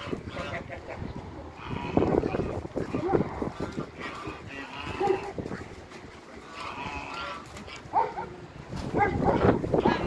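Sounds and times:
farm animal cries: 1.6 - 5.4.

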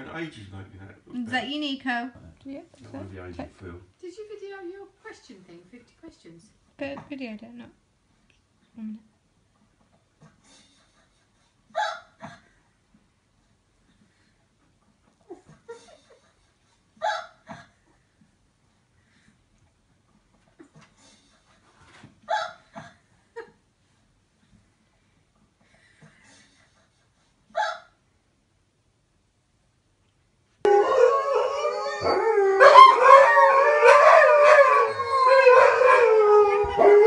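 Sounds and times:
dog yipping: 11.8 - 12.1, 17.0 - 17.4, 22.3 - 22.6, 27.6 - 27.9.

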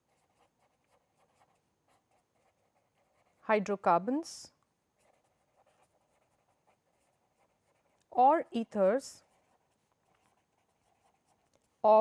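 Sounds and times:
marker scratching on paper: 0.0 - 3.9, 5.0 - 11.7.

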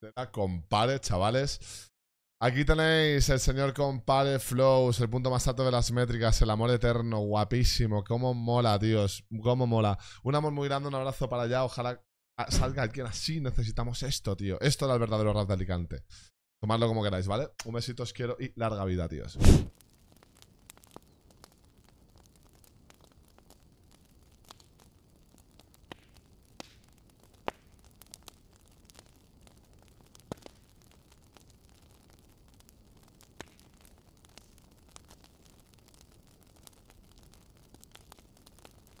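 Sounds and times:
sharp clicks and crackles: 19.7 - 39.0.

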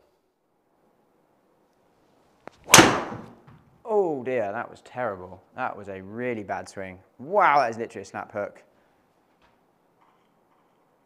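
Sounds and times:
golf club striking ball: 2.6 - 3.4.

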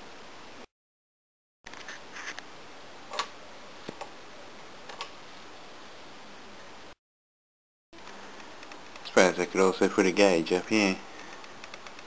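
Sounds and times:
room tone hiss: 0.0 - 0.7, 1.7 - 7.0, 8.0 - 12.0.

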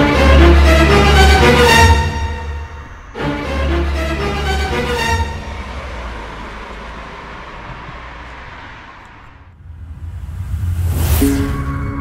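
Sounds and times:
rumbling hissing whoosh: 9.6 - 11.6.

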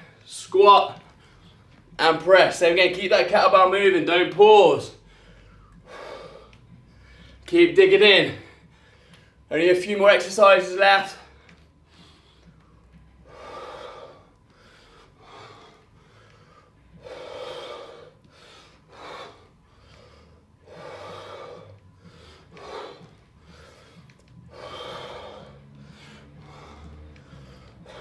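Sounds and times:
man breathing hard: 1.0 - 2.0, 5.0 - 7.5, 8.4 - 9.5, 11.0 - 28.0.

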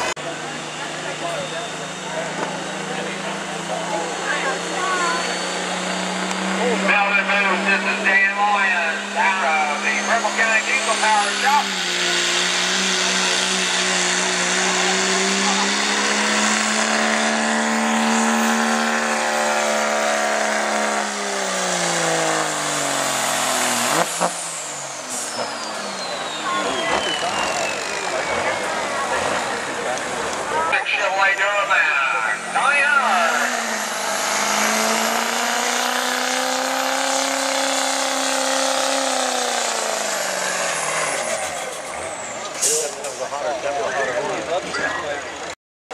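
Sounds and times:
diesel truck engine under load: 0.0 - 45.6
second diesel truck engine: 0.0 - 45.9.

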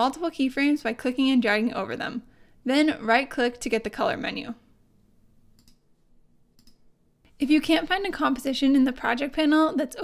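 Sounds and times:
faint computer mouse clicks: 5.6 - 5.8, 6.6 - 6.8.

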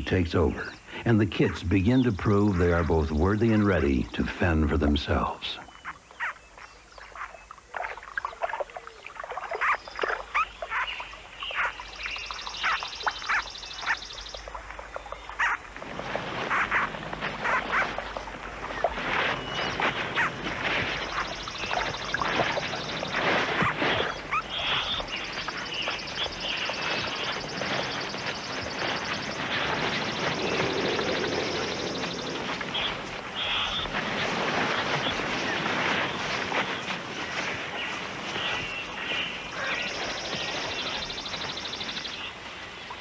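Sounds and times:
rustling through vegetation: 0.0 - 43.0.

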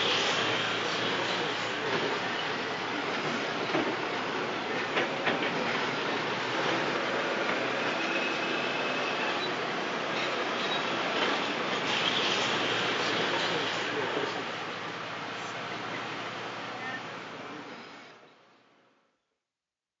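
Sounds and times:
diesel engines running: 0.0 - 17.9.

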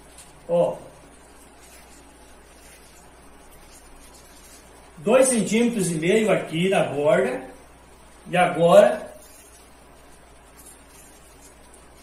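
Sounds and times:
low hiss: 0.0 - 12.0.

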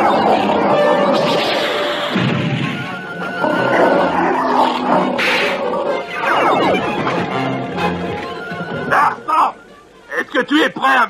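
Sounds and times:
sharp hissing burst: 1.2 - 2.5.

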